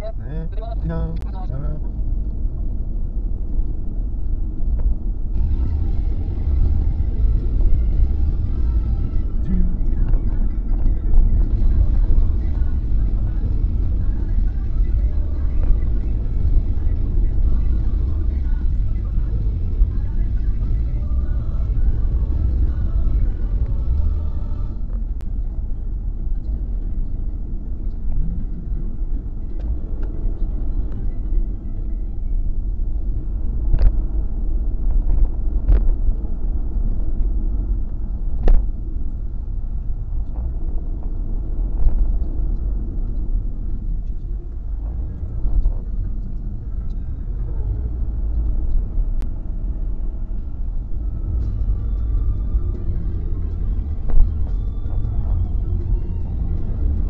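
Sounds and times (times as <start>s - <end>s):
car cabin road rumble: 0.0s - 57.0s.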